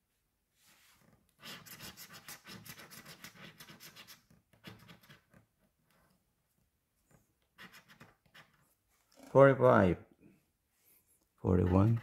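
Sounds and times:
lottery ticket being scratched: 0:01.4 - 0:05.3, 0:07.6 - 0:08.6, 0:11.5 - 0:12.0.

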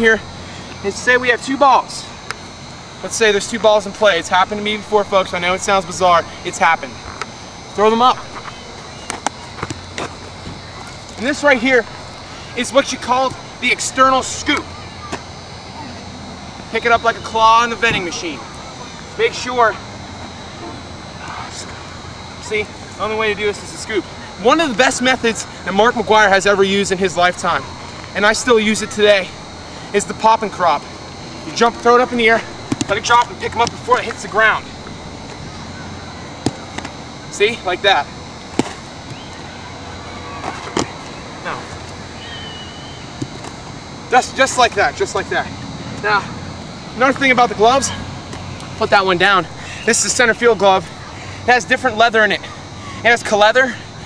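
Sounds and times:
outdoor background hiss: 0:00.0 - 0:54.0
baseball smacking into glove: 0:38.5 - 0:39.2.

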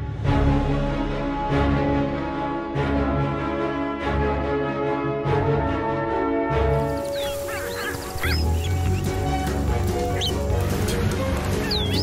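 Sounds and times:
soundtrack music with low bass: 0:00.0 - 0:12.0
rain hiss: 0:06.8 - 0:11.1
small bird chirping: 0:06.8 - 0:12.0.

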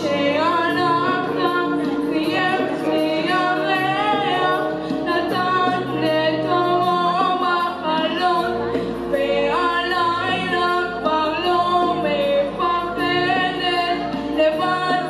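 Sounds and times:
boy singing into a microphone: 0:00.0 - 0:15.0
musical accompaniment with bass: 0:00.0 - 0:15.0.

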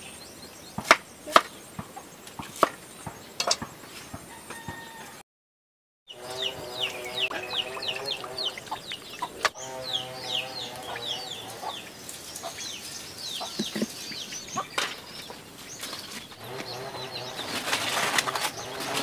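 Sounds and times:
chickens chirping: 0:06.1 - 0:19.0
chickens clucking: 0:06.1 - 0:19.0.

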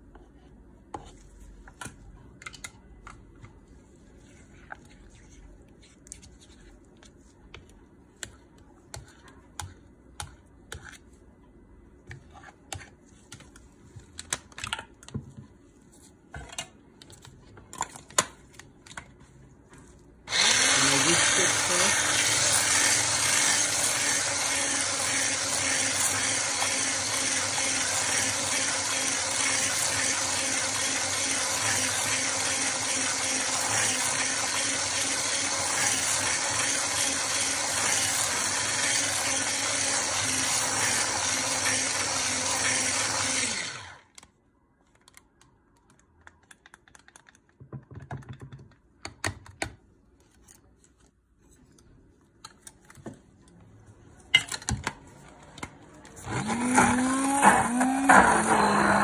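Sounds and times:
stick blender whipping: 0:20.3 - 0:44.1, 0:56.2 - 0:59.0.

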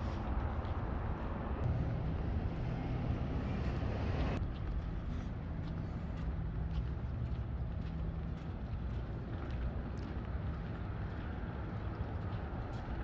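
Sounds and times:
faint engine hum: 0:00.0 - 0:13.0
low rumble of road traffic: 0:00.0 - 0:13.0.

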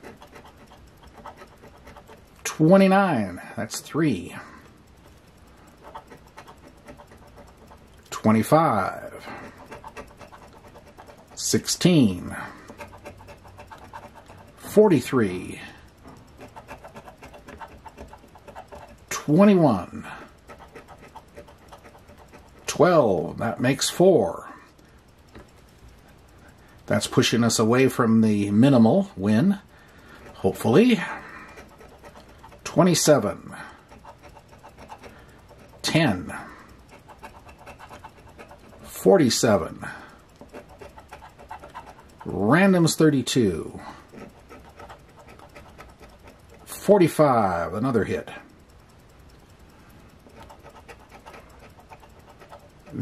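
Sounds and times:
coin scraping scratch-off ticket: 0:00.0 - 0:03.2, 0:05.7 - 0:23.9, 0:30.2 - 0:48.0, 0:50.3 - 0:53.0.

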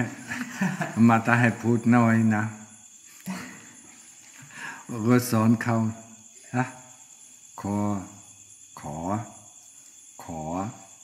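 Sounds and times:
night insects droning: 0:00.0 - 0:11.0
man chanting: 0:04.9 - 0:06.9, 0:10.2 - 0:10.9.

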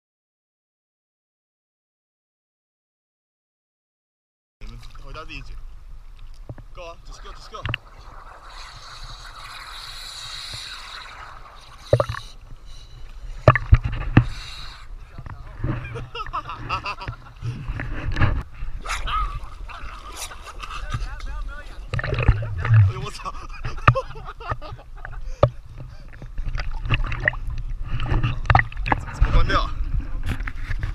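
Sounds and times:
seawater sloshing and splashing: 0:07.2 - 0:14.4, 0:15.1 - 0:24.1, 0:25.8 - 0:29.6
wind on microphone: 0:07.3 - 0:30.9.

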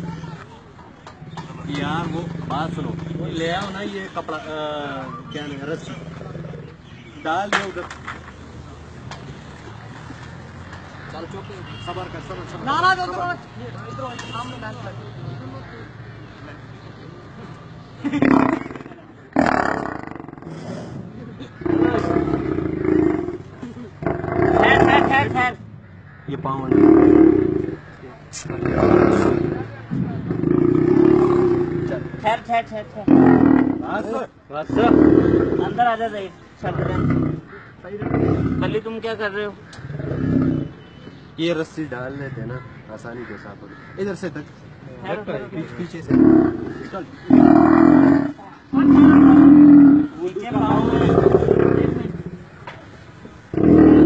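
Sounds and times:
lion growling: 0:05.1 - 0:06.8, 0:18.2 - 0:25.6, 0:26.6 - 0:32.2, 0:33.0 - 0:36.0, 0:36.6 - 0:38.8, 0:39.6 - 0:40.8, 0:46.0 - 0:52.6, 0:53.5 - 0:54.0.

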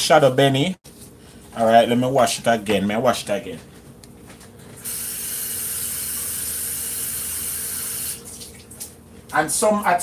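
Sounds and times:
kitchen tap running water: 0:04.8 - 0:09.0.

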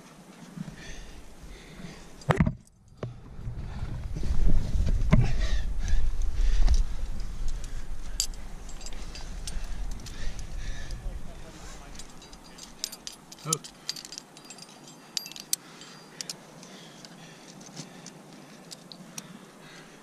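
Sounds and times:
wind buffeting microphone: 0:03.0 - 0:13.0
light metallic clicks of gear: 0:06.2 - 0:19.4.

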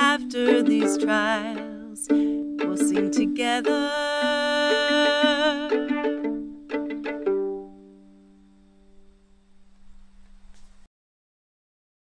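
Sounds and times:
woman singing with vibrato: 0:00.0 - 0:06.6
violin plucked pizzicato: 0:00.0 - 0:08.8.

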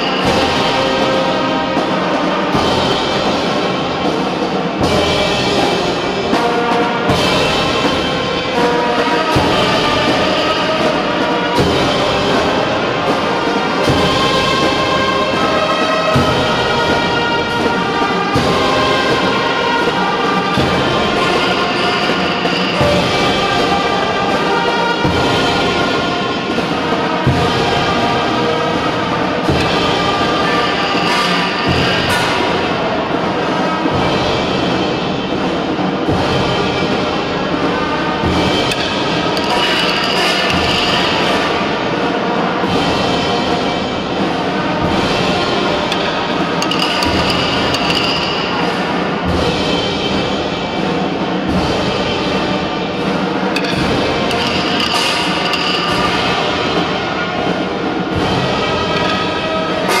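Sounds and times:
brass band playing slow march: 0:00.0 - 1:00.0.

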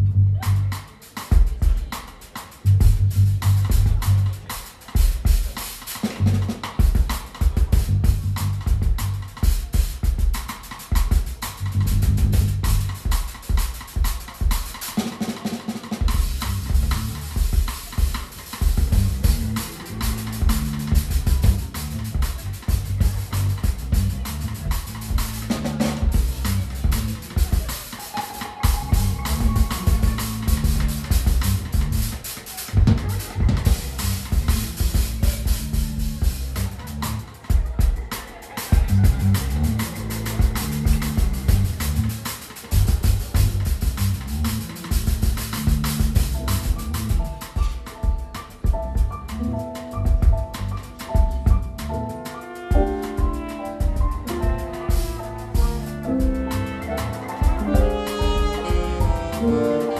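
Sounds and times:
low bass line: 0:00.0 - 0:00.8, 0:02.7 - 0:04.4, 0:06.2 - 0:06.6, 0:07.5 - 0:09.3, 0:11.6 - 0:13.0, 0:16.2 - 0:17.5, 0:18.7 - 0:27.6, 0:28.6 - 0:32.2, 0:32.8 - 0:37.3, 0:38.8 - 0:47.4, 0:48.7 - 0:52.2, 0:52.8 - 0:59.9
drum kit playing: 0:00.0 - 0:59.9.

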